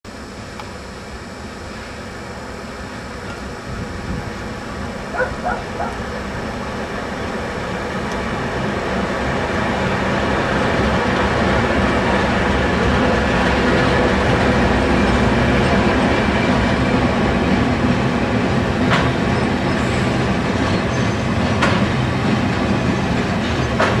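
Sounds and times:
diesel locomotive engines rumbling: 0:00.1 - 0:24.0.

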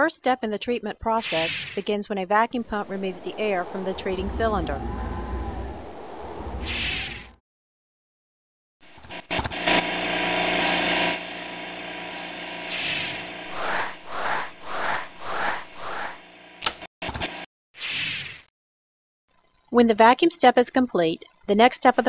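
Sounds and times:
rhythmic air whooshes: 0:01.8 - 0:05.1, 0:12.6 - 0:16.6.

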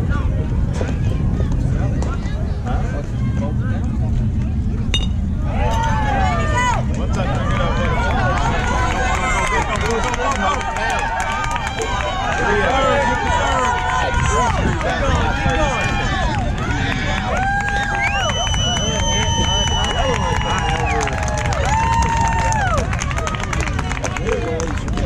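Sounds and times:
people shouting and cheering: 0:00.0 - 0:25.0
wind rumble on microphone: 0:00.0 - 0:25.0.

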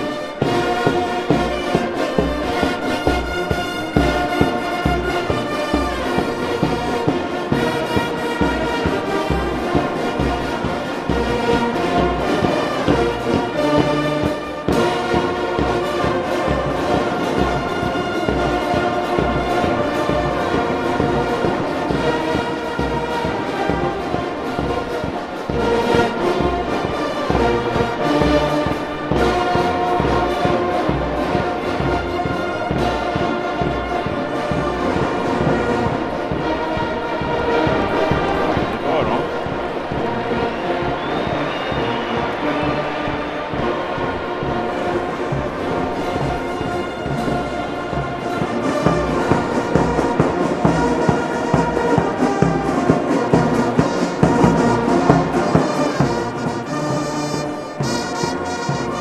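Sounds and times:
steady drum beat: 0:00.0 - 0:59.0
trombones: 0:00.0 - 0:59.0
trumpets: 0:00.0 - 0:59.0.

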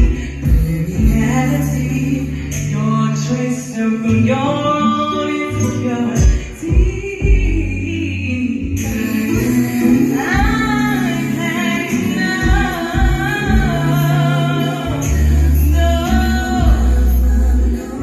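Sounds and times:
backing track with deep bass: 0:00.0 - 0:18.0
woman singing into microphone: 0:00.0 - 0:18.0.

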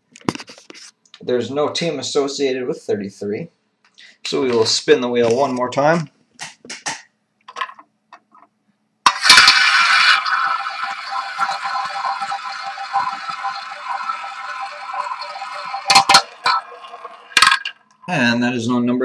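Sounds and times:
roulette ball rattling: 0:09.4 - 0:18.1.

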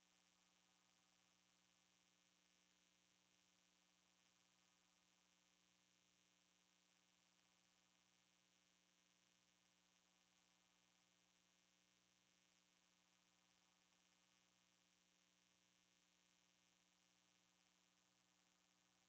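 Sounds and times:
faint hum with hiss: 0:00.0 - 0:19.0.

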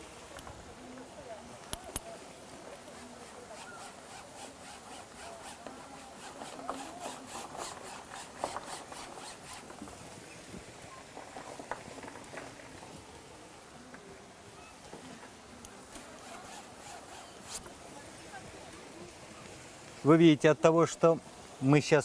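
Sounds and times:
brush rubbing paint on canvas: 0:02.8 - 0:10.0, 0:16.0 - 0:17.8.

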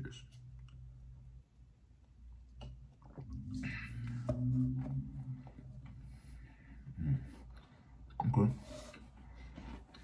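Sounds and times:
man humming low mmm: 0:06.9 - 0:07.4.

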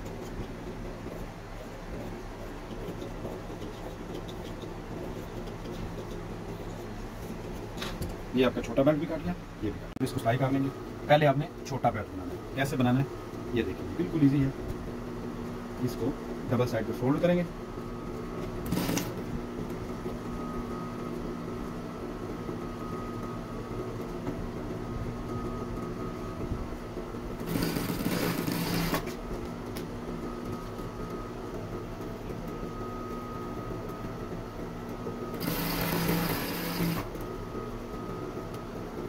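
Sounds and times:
sewing machine stitching: 0:18.6 - 0:19.2, 0:27.4 - 0:29.1, 0:35.4 - 0:37.1
sewing machine motor humming: 0:18.6 - 0:19.3, 0:27.4 - 0:29.2, 0:35.4 - 0:37.1.

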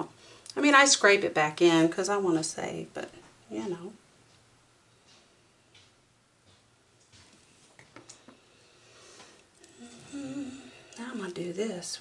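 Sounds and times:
woman humming: 0:09.6 - 0:11.0.

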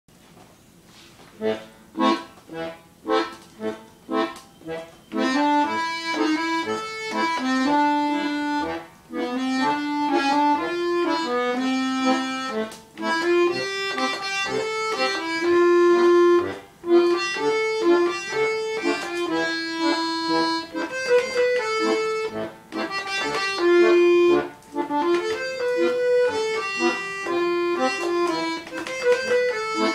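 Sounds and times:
button accordion melody: 0:01.4 - 0:29.9.

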